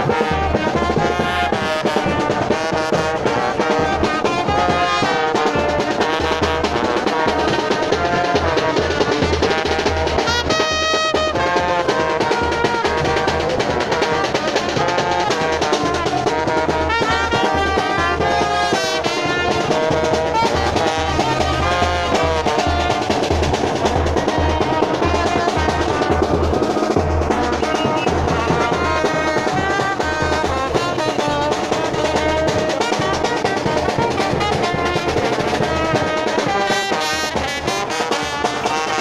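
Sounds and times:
bass drum beat: 0.0s - 39.0s
trombones and trumpet playing: 0.0s - 39.0s.

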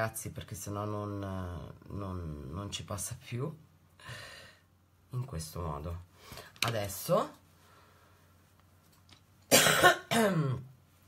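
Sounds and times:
person clearing throat: 9.5s - 10.7s.

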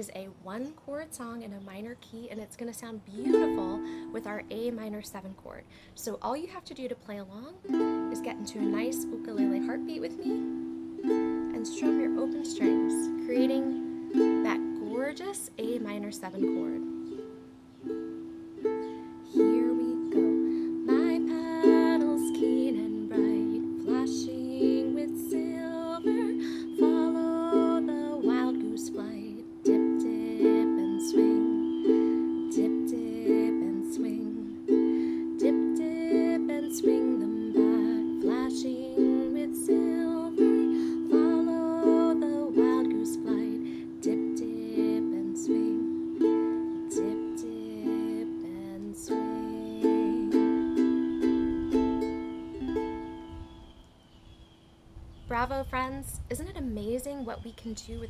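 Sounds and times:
woman singing folk melody: 0.0s - 53.6s, 55.3s - 58.0s
ukulele strumming: 3.1s - 4.7s, 7.6s - 53.3s.

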